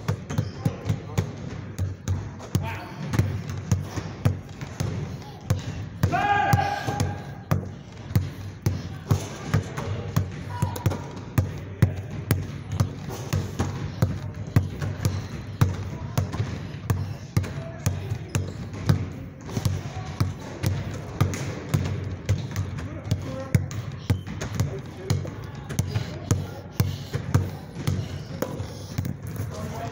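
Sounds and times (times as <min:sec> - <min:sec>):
basketball dribbling: 0:00.0 - 0:29.9.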